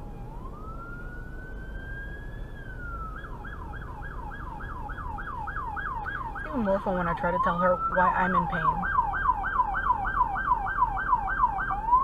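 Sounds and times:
emergency siren wailing and yelping: 0.0 - 12.0.

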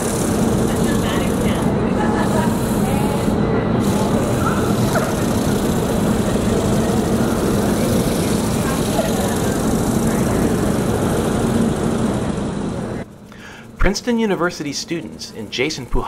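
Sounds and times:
indistinct voices: 0.0 - 13.0.

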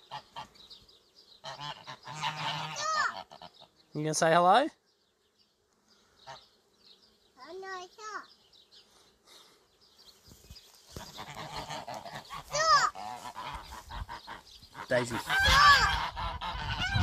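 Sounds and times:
geese honking: 0.0 - 0.7, 1.4 - 3.8, 10.9 - 17.0.

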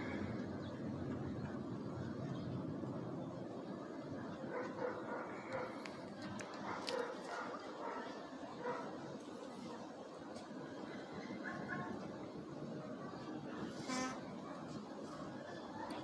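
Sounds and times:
low background noise: 0.0 - 16.0
dog barking: 4.5 - 5.8, 6.6 - 9.0.

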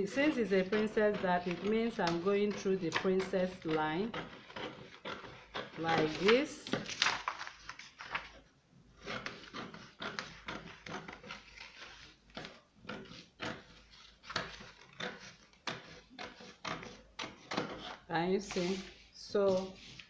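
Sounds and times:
scissors cutting paper: 0.1 - 8.2, 9.0 - 18.8.

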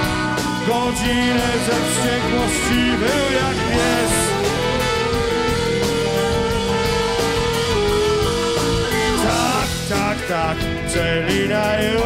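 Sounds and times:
bass guitar: 0.0 - 12.0
drums: 0.0 - 12.0
electric guitar: 0.0 - 12.0.

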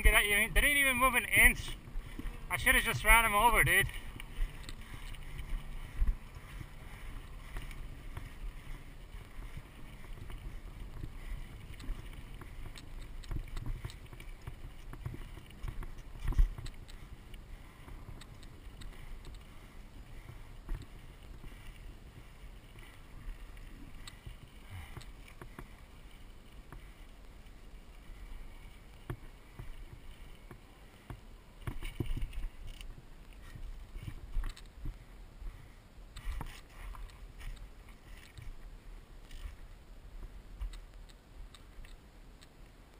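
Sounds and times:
wind rumbling on microphone: 0.0 - 42.9.

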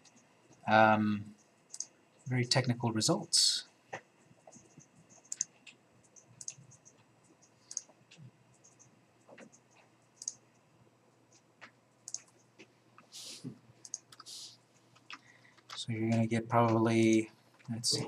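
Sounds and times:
computer keyboard clicks: 4.4 - 8.0, 8.6 - 10.4, 12.0 - 12.5, 13.8 - 14.3, 15.0 - 17.8
mouse clicks: 4.5 - 7.9, 10.2 - 10.4, 12.1 - 12.4, 13.8 - 14.3.

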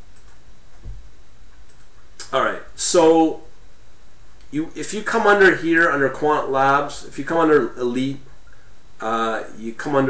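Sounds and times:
low steady hum: 0.0 - 10.0
soft low thump: 0.8 - 1.1
computer mouse clicks: 1.6 - 2.3.

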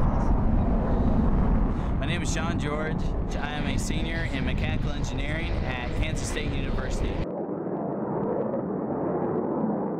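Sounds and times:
jet engine roar: 0.0 - 7.2.

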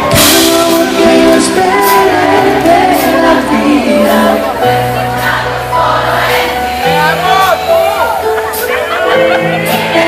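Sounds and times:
audience singing and calling out: 0.0 - 10.0
live band music over sound system: 0.0 - 10.0.

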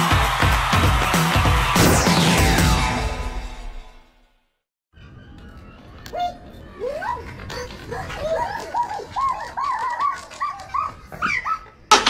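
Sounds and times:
dog yelping and whimpering: 9.8 - 11.8.

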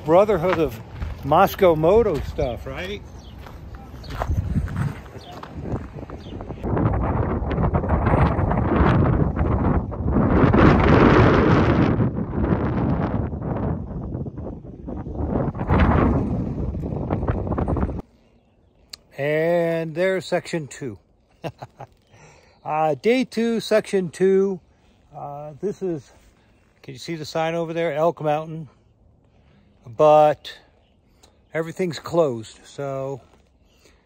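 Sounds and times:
wind blowing across microphone: 0.0 - 18.2.

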